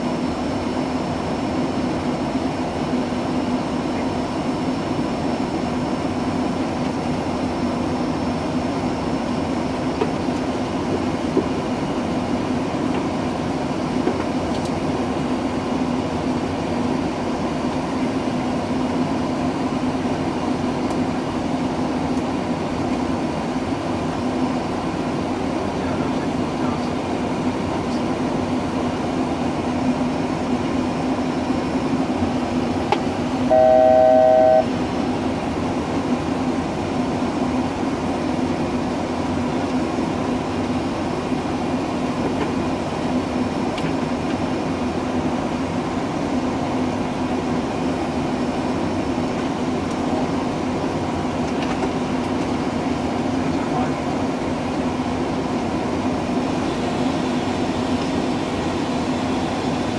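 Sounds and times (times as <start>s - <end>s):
airflow and air-conditioning noise: 0.0s - 59.9s
low hum: 33.2s - 35.4s
electronic cockpit alert tone: 33.5s - 34.8s.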